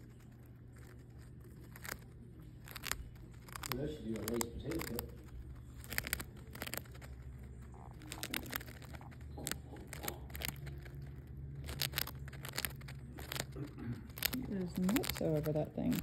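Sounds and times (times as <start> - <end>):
hamster crunching a chip: 0.0 - 16.0
low steady hum: 0.0 - 16.0.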